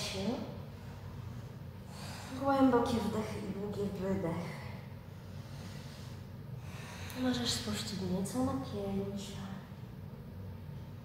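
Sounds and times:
low steady hum: 0.0s - 11.0s
woman breathing deeply: 0.7s - 2.4s, 4.9s - 7.2s.

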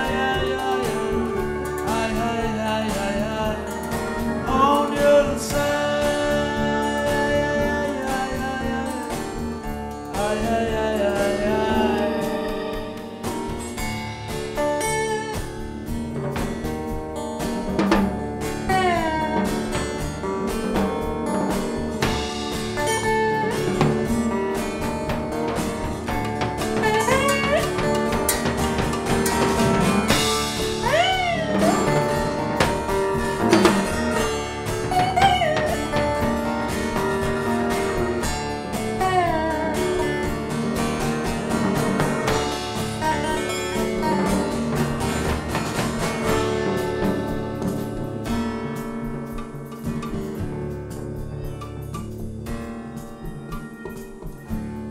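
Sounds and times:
drum kit beat: 0.0s - 54.9s
slide guitar gliding: 0.0s - 54.9s.

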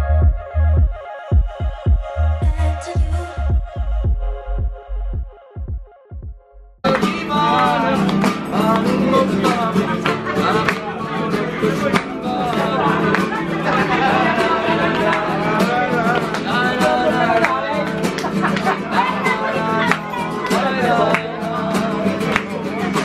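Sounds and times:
man singing: 0.0s - 5.7s, 6.8s - 23.0s
acoustic guitar strumming: 6.8s - 23.0s.

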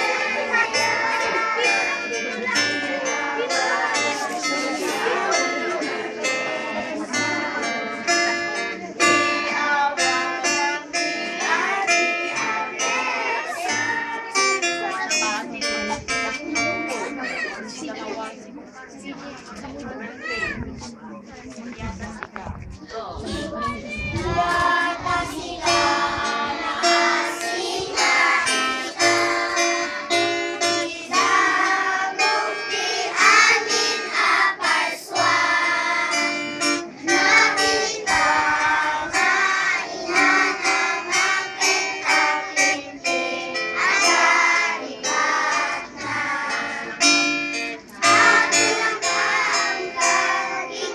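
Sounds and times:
young children's voices: 0.0s - 18.4s, 19.4s - 21.0s, 22.8s - 47.0s
high child's voice: 14.6s - 18.0s, 19.9s - 20.9s, 23.2s - 24.4s.

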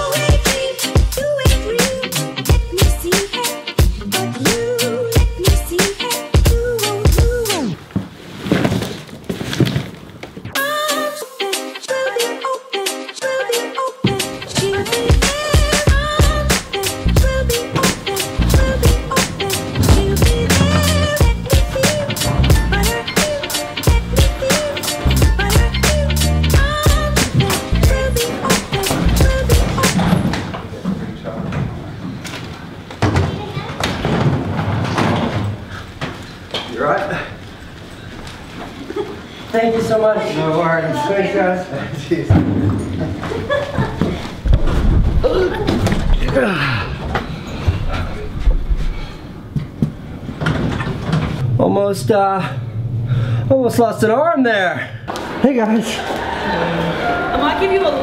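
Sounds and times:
music with a strong beat: 0.0s - 7.8s, 11.4s - 30.2s
rustling: 7.8s - 10.6s
suitcases knocking and thumping: 17.7s - 21.8s, 32.9s - 36.2s
low voices: 45.2s - 48.9s.

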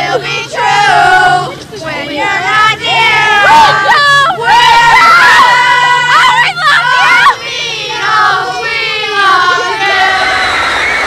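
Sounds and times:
audience screaming and cheering: 9.5s - 11.0s.

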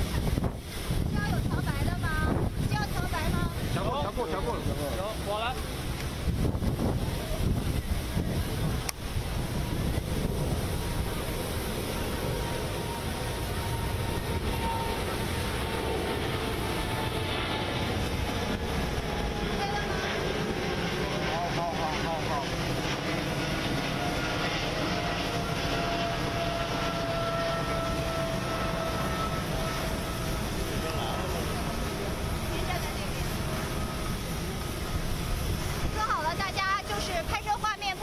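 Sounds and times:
jet engine rumble and whine: 0.0s - 38.0s.

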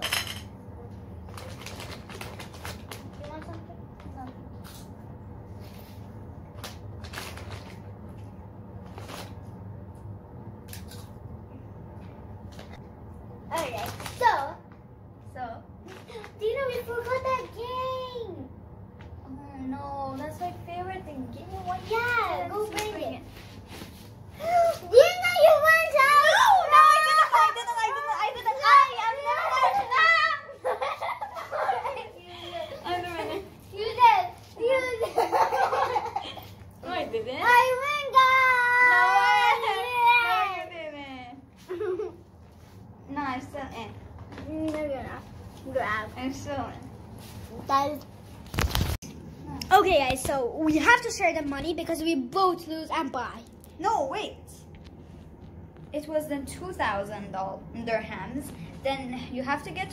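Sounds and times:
snack wrappers crinkling: 1.2s - 3.5s, 6.6s - 8.0s
girls chattering excitedly: 24.4s - 30.7s.

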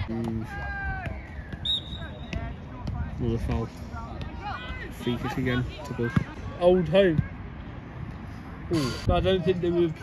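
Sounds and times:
referee's whistle: 1.3s - 2.4s.

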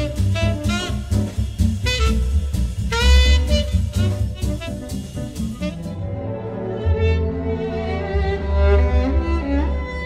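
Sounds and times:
violin concerto over speakers: 5.5s - 10.0s.

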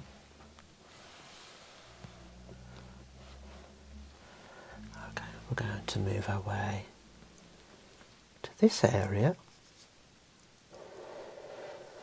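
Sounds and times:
soft-spoken voice: 4.7s - 7.0s.

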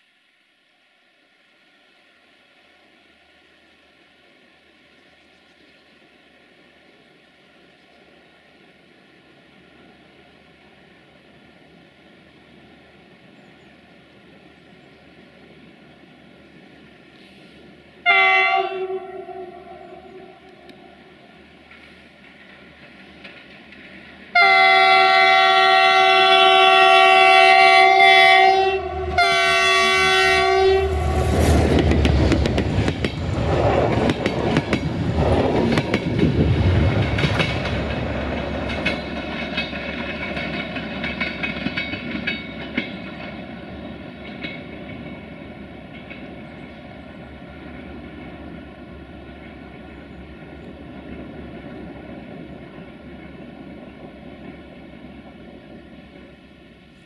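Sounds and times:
locomotive horn blasts: 18.0s - 20.6s, 24.3s - 31.4s
train wheels clattering over rails: 21.4s - 24.7s, 31.1s - 56.3s.

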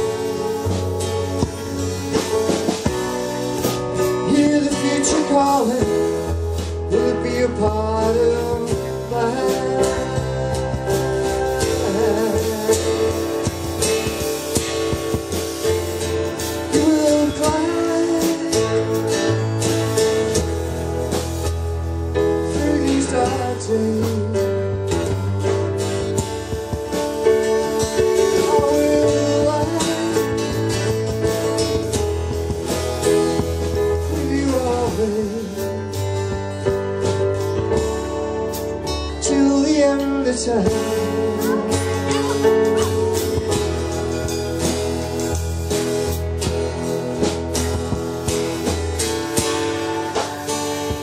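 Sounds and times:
drum and cymbal hits: 0.0s - 39.3s, 40.1s - 51.0s
acoustic guitars: 0.0s - 51.0s
keyboard piano: 0.0s - 51.0s.

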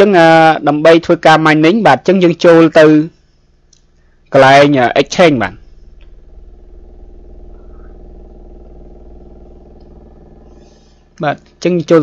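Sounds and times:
low engine hum: 5.6s - 11.2s.

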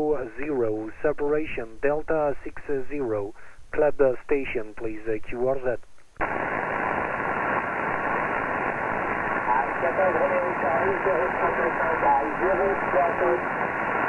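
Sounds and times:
radio static hiss: 0.0s - 14.0s
faint voice over radio: 9.4s - 13.6s.

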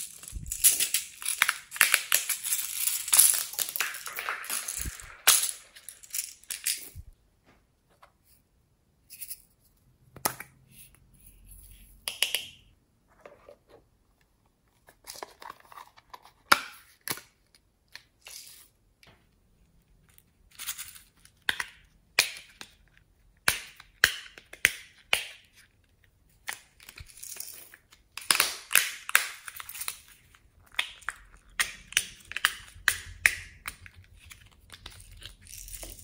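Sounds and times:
beads rattling: 0.0s - 7.2s.

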